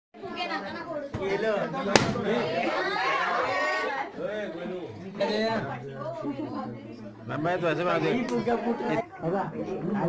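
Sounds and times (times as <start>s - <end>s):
people talking over one another: 0.2s - 5.7s.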